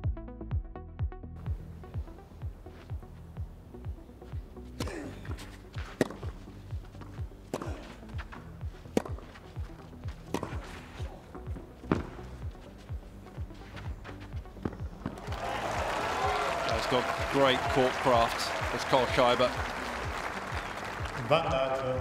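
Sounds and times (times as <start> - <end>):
background music with low beat: 0.0 - 22.0
racket hitting tennis ball: 4.8 - 6.4, 7.0 - 12.6
applause: 15.2 - 22.0.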